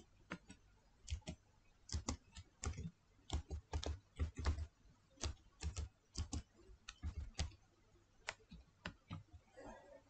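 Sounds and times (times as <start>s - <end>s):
keyboard typing: 0.1s - 7.6s.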